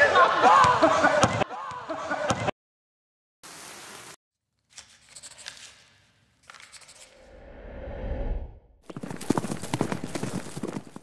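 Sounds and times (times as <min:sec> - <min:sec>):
hooves clattering on hard ground: 0:08.8 - 0:11.0.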